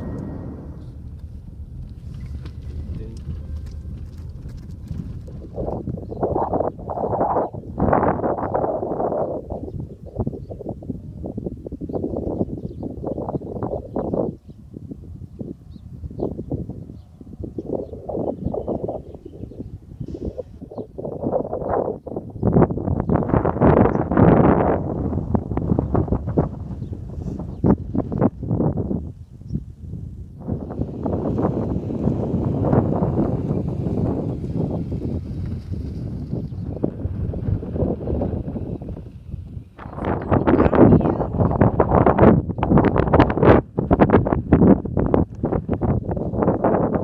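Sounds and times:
road rumble: 0.0 - 7.0, 24.8 - 42.6
wind buffeting microphone: 0.0 - 47.0.

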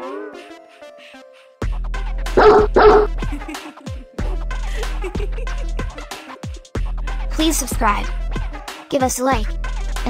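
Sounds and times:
music with heavy bass: 1.6 - 8.8, 9.4 - 10.0
dog barking: 2.4 - 3.2.

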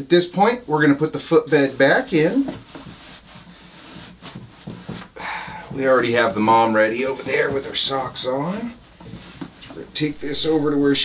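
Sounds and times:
soft knocks: 2.4 - 10.6.

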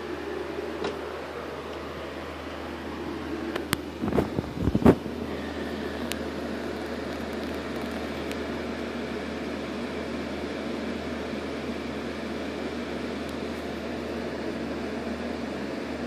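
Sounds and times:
steady background hum: 0.0 - 16.0.

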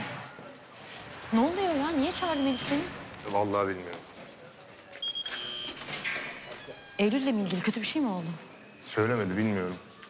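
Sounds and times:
security gate buzzer: 5.1 - 7.3.

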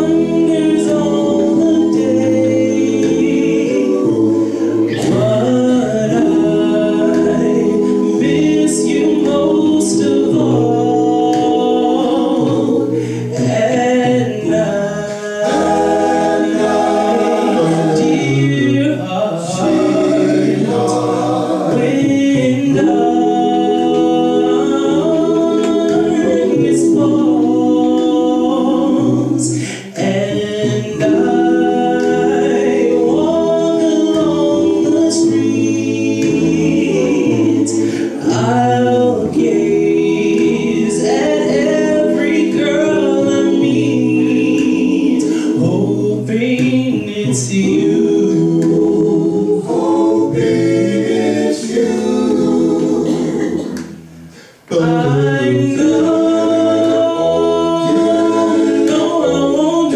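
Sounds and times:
male group singing a cappella: 0.0 - 59.9.

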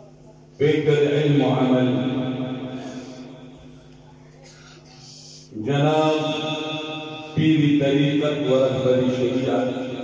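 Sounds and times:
man chanting into a microphone: 0.6 - 3.6, 5.5 - 10.0.

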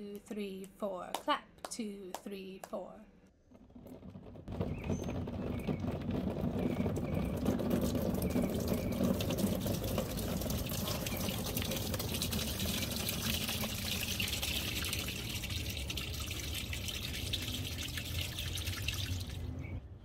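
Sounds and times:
water beads pouring into plastic tub: 6.0 - 19.5.

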